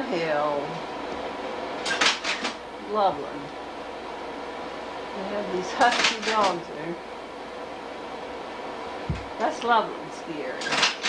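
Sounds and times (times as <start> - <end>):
faint steady hum: 0.0 - 11.0
slide projector clacking: 5.8 - 6.6.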